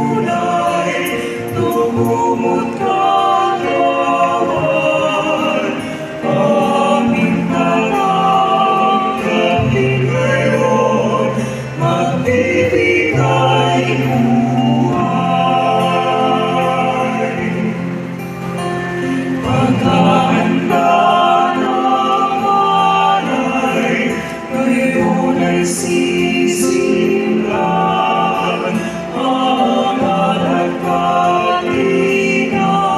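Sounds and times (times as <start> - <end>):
choir singing a hymn: 0.0 - 32.9.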